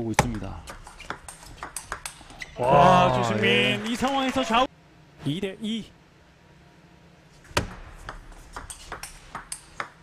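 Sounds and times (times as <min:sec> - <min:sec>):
table tennis ball clicking: 0:08.1 - 0:10.0.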